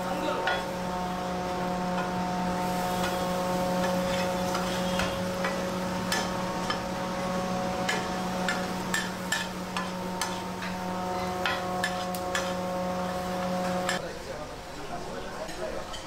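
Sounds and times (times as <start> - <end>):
steady hum: 0.0 - 14.0
metal spatula scraping griddle: 2.0 - 14.0.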